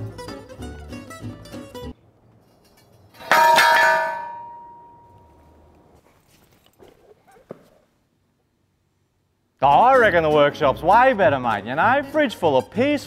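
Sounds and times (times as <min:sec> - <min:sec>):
loud metallic clang: 0:03.1 - 0:05.2.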